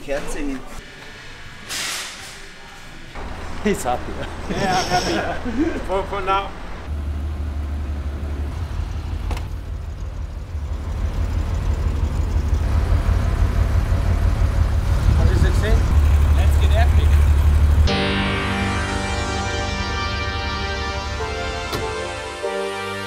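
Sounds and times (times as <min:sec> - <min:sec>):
music: 0:17.9 - 0:23.0.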